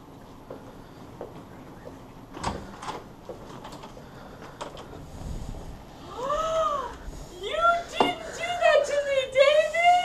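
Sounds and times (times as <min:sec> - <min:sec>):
woman's high-pitched cry: 0:06.1 - 0:10.0.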